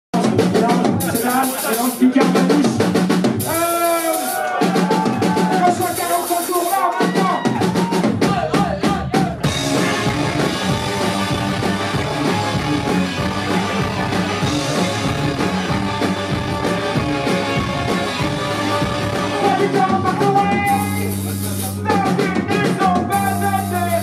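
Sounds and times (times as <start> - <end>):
distorted guitars: 0.2 - 24.0
drums and cymbal crashes: 0.2 - 24.0
rock band playing live: 0.2 - 24.0
person singing: 19.2 - 24.0.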